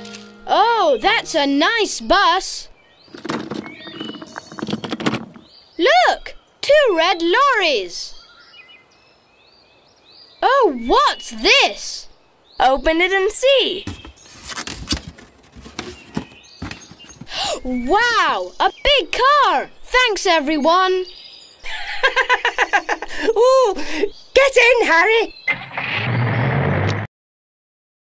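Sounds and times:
cartoon box rustling and clicking: 0:03.1 - 0:05.5, 0:13.8 - 0:17.4.

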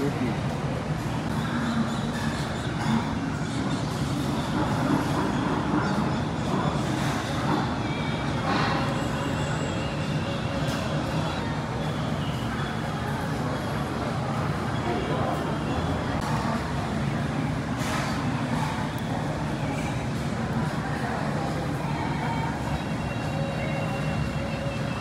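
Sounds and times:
faint voices: 0:00.0 - 0:25.0.

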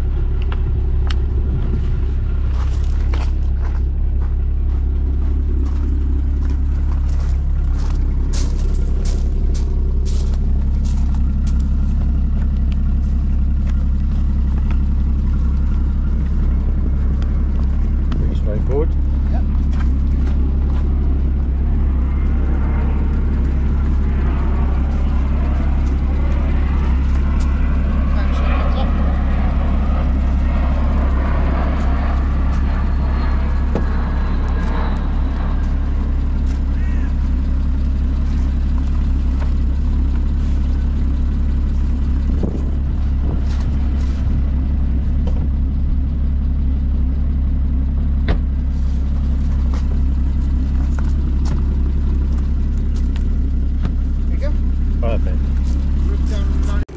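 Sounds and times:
car engine idling: 0:00.0 - 0:56.9.

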